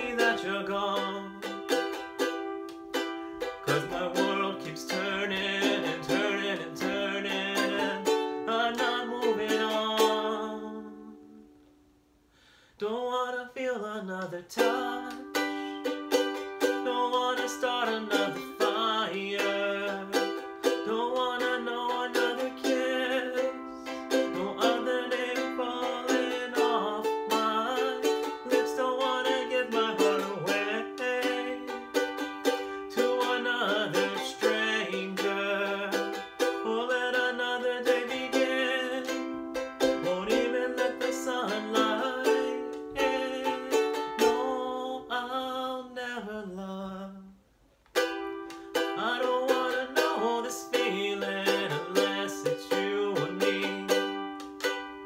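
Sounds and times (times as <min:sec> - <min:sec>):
ukulele strumming chords: 0:00.0 - 0:11.8, 0:13.8 - 0:47.2, 0:47.9 - 0:55.0.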